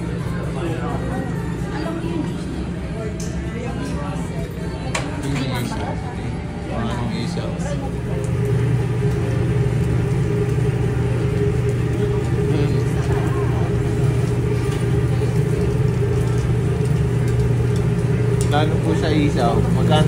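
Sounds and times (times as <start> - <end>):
faint voices: 0.0 - 20.0
loud low machine hum: 0.0 - 20.0.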